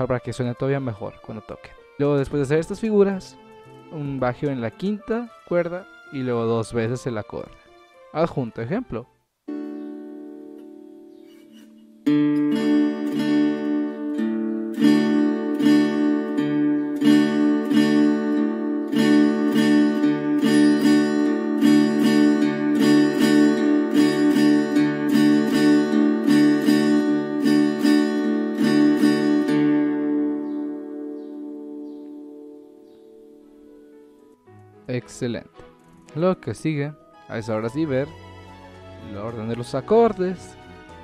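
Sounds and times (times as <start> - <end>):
acoustic guitar strumming: 0.0 - 8.5, 9.2 - 41.0.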